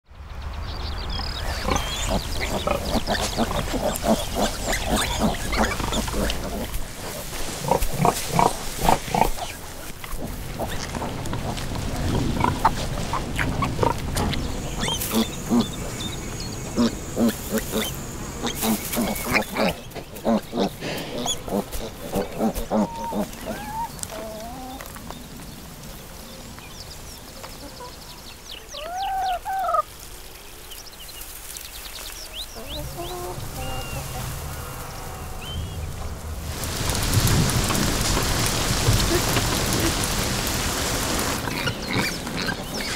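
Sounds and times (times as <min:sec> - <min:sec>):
pigs grunting: 0:01.5 - 0:24.8
pig squeals: 0:01.6 - 0:06.7, 0:16.8 - 0:24.4
chicken squawking: 0:16.8 - 0:24.8.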